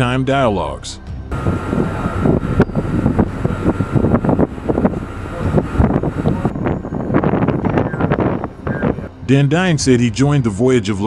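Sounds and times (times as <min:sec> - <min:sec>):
low steady rumble: 0:00.0 - 0:11.0
wind buffeting microphone: 0:01.3 - 0:10.4.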